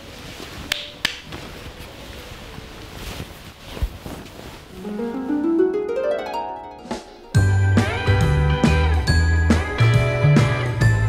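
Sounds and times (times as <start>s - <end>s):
bedclothes rustling: 0.0s - 5.8s.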